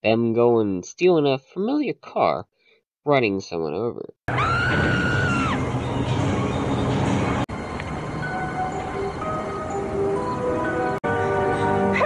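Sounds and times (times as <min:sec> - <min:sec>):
loud rumbling vehicle noise: 0:04.7 - 0:11.0.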